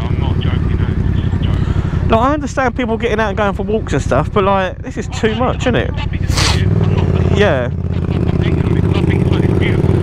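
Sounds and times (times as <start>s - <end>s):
motorcycle engine running at low revs: 0.0s - 10.0s.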